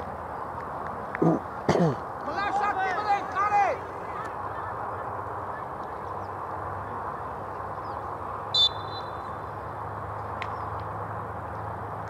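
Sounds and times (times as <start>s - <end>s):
players shouting: 2.1s - 7.8s
referee's whistle blast: 8.5s - 9.2s.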